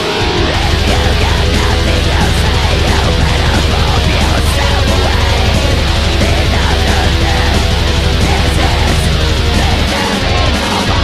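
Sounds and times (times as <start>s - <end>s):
death metal music: 0.0s - 11.0s.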